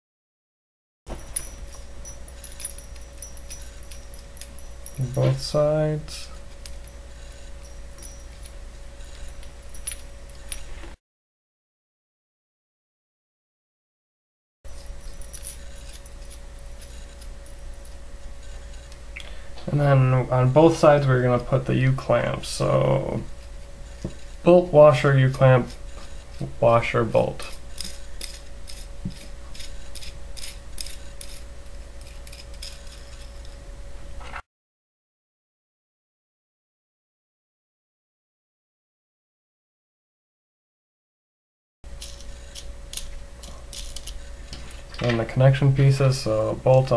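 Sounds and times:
steady low hum: 1.1s - 11.0s, 14.7s - 34.4s, 41.8s - 46.9s
metal nuts and washers clicking: 27.4s - 33.6s, 42.0s - 44.2s.

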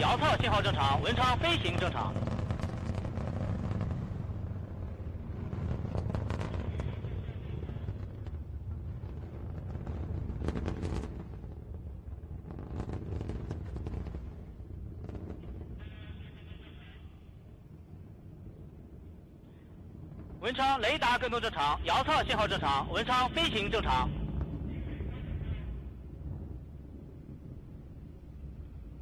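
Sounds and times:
rocket engines rumbling and crackling: 0.0s - 29.0s.

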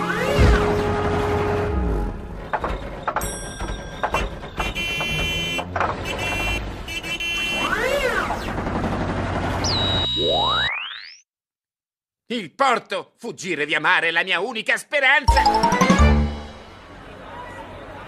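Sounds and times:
electronic beeping tones: 9.6s - 11.2s.

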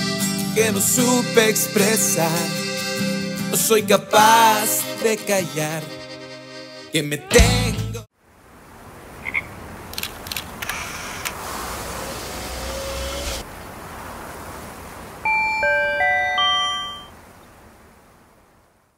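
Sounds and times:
sharp clicks: 9.9s - 11.4s
whoosh of noise: 10.9s - 15.6s
bright chime notes: 15.3s - 17.1s.

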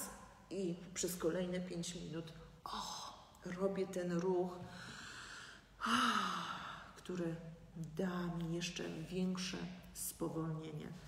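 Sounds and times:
woman breathing in: 4.6s - 7.0s.

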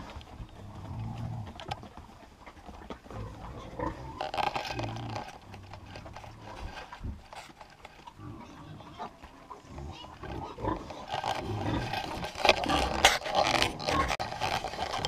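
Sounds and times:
straw rustling: 0.0s - 15.0s
piglets grunting: 8.0s - 15.0s.

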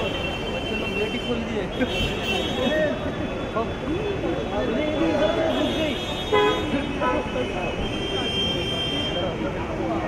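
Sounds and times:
people talking and laughing: 0.0s - 10.0s.

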